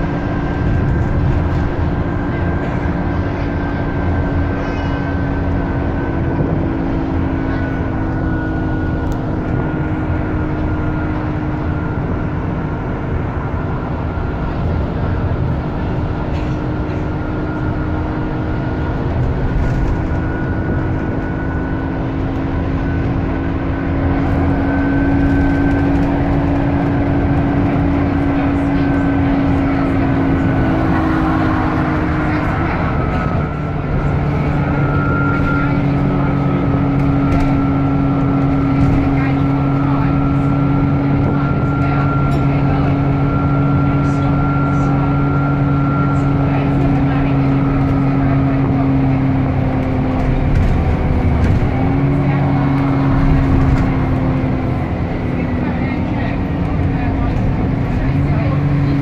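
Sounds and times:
bus engine rumble with whine: 0.0 - 59.0.

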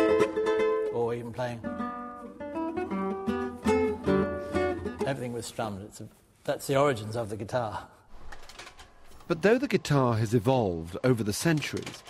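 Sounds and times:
nylon-string guitar plucked notes: 0.0 - 5.2.

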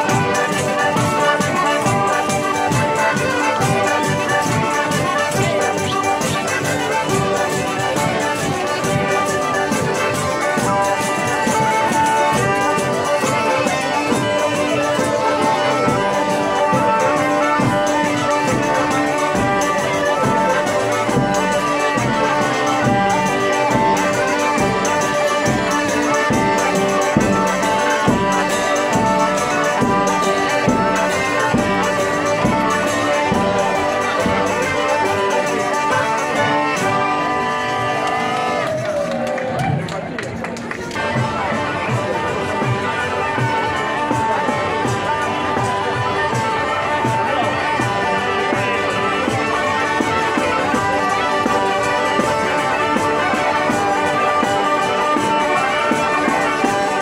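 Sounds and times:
button accordion melody: 0.0 - 38.7, 41.0 - 57.0
hand drums beating: 0.0 - 57.0.

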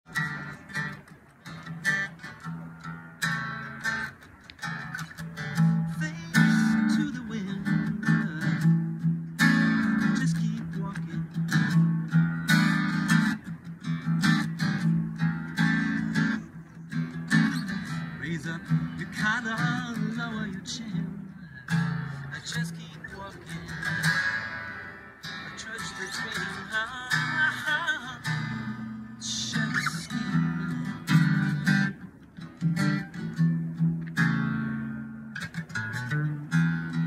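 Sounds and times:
acoustic guitar strumming: 0.1 - 37.0.

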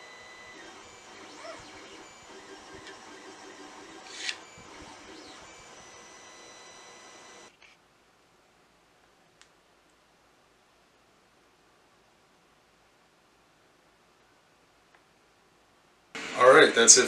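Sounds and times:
faint steady high tones: 0.0 - 7.5.

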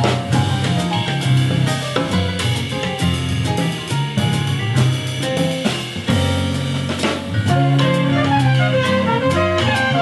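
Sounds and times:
bass: 0.0 - 10.0
piano: 0.0 - 10.0
trumpet: 7.4 - 10.0
saxophones: 7.5 - 10.0.

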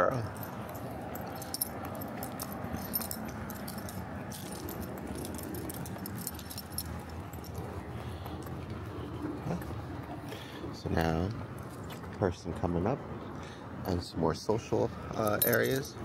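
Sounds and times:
dog collar jingling: 0.0 - 7.8, 15.1 - 16.0
outdoor background noise: 0.0 - 16.0.

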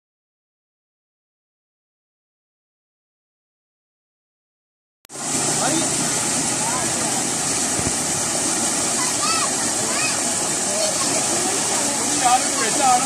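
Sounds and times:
water gushing into tank: 5.1 - 13.0.

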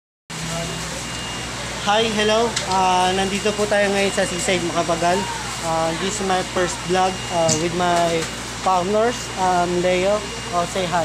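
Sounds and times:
background hum and hiss: 0.3 - 11.0
faint constant tones: 0.4 - 11.0
man saying hi: 5.0 - 7.9.

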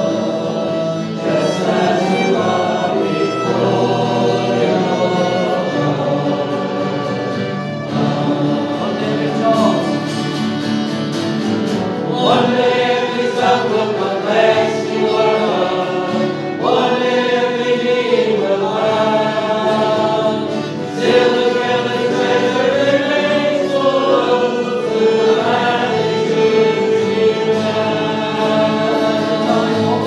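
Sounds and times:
bowed violin: 0.0 - 30.0
congregation singing: 0.0 - 30.0.

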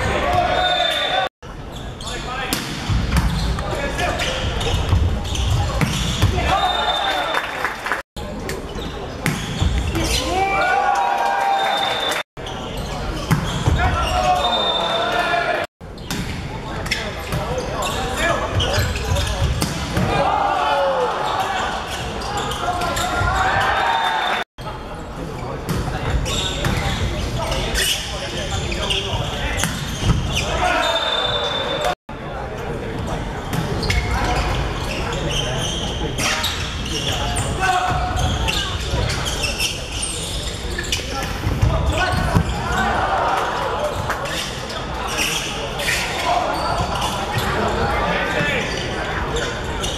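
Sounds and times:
players and spectators shouting: 0.0 - 1.3, 9.9 - 12.2, 13.8 - 15.7, 20.0 - 24.4, 30.3 - 32.0, 41.8 - 44.0
referee's whistle: 6.5 - 7.4, 11.6 - 12.2, 14.1 - 15.2, 30.7 - 31.9.

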